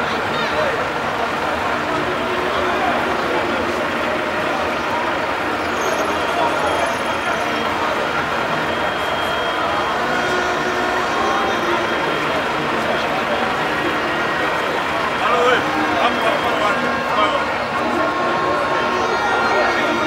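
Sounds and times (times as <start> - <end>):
bus engine idling: 0.0 - 20.0
crowd of people talking: 0.0 - 20.0.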